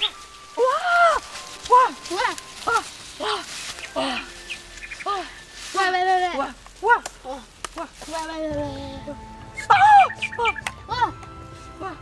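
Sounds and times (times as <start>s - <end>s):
boys calling: 0.6s - 11.2s.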